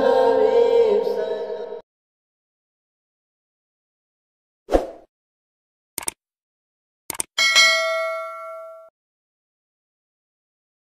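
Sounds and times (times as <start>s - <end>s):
mouse clicks: 7.1s - 7.3s
notification bell ding: 7.4s - 8.9s.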